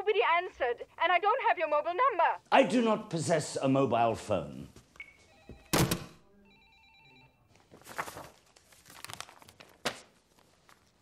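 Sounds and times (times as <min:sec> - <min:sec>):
telephone ringing: 0:05.0 - 0:07.5
paper rustling: 0:07.5 - 0:11.0.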